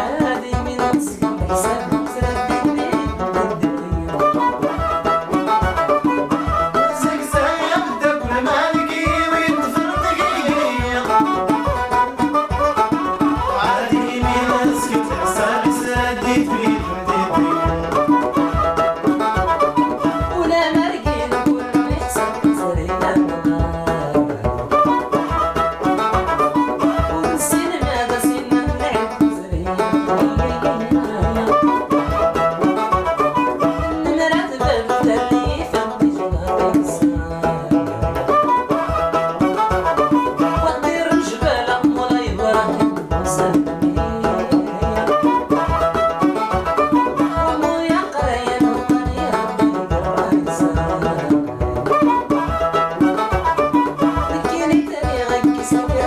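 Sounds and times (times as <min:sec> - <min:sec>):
banjo: 0:00.0 - 0:56.0
bowed fiddle melody: 0:00.0 - 0:56.0
hand drum beat: 0:00.0 - 0:56.0.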